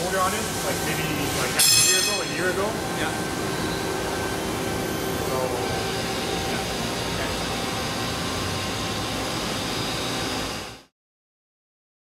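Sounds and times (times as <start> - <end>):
mist collector air rush: 0.0 - 10.8.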